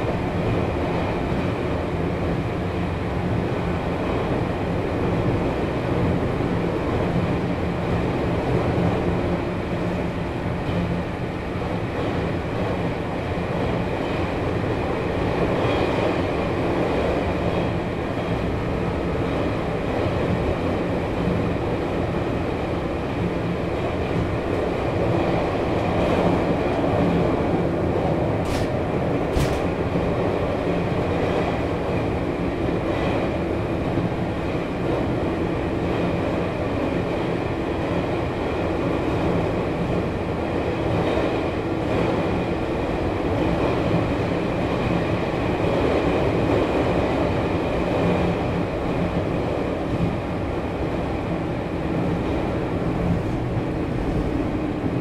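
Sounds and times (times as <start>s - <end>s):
train wheels and motors rumbling: 0.0s - 55.0s.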